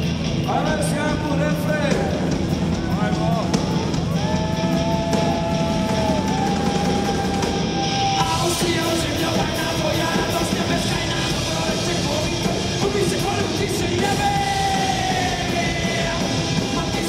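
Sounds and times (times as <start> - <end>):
live rock band playing: 0.0 - 17.0
person singing: 5.3 - 17.0.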